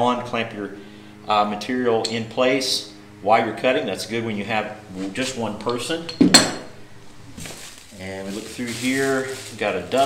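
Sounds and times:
metal clamp clinking on floor: 2.0s - 2.2s, 5.6s - 6.7s
faint rustling: 7.1s - 10.0s.

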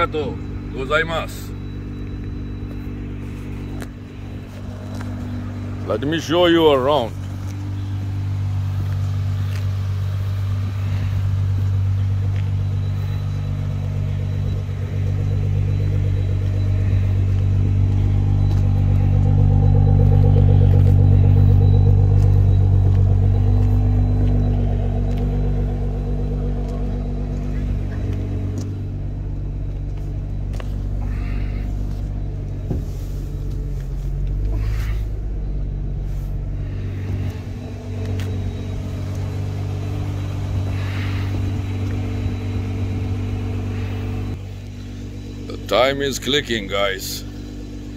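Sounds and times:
car engine idling: 0.0s - 47.9s.

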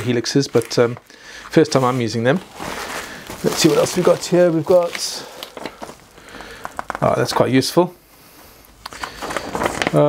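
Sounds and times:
paper and plastic packaging crinkling: 0.0s - 7.8s, 8.4s - 10.0s.

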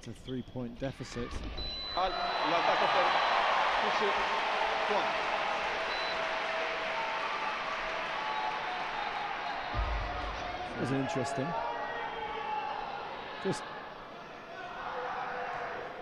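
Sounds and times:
crowd cheering and applauding: 2.0s - 13.8s
voices shouting: 2.0s - 16.0s.

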